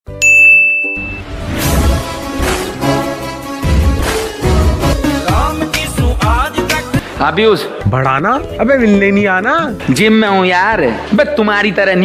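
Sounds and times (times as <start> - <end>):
bright ding: 0.2 - 1.3.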